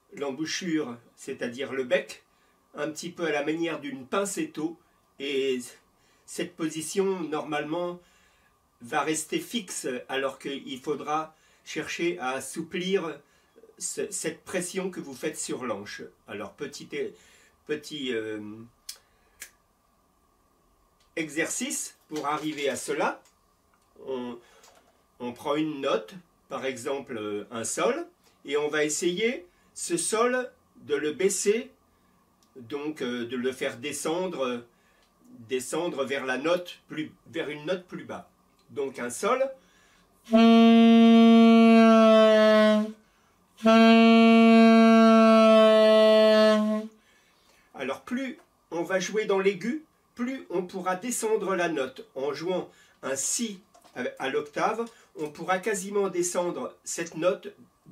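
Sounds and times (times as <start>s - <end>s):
saxophone long notes: 40.3s - 43.0s, 43.6s - 47.0s.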